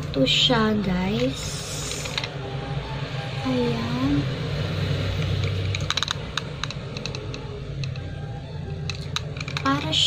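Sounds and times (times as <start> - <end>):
small clicks and taps of box: 5.4 - 8.1, 8.8 - 9.9.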